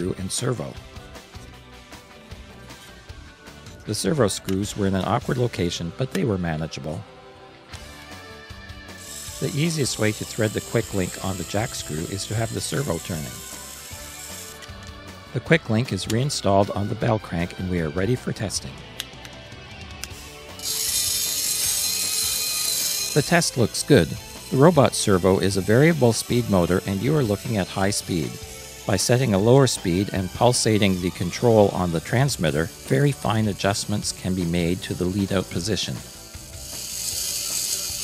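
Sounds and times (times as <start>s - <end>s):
servo motor whirring: 8.9s - 15.0s, 20.0s - 38.0s.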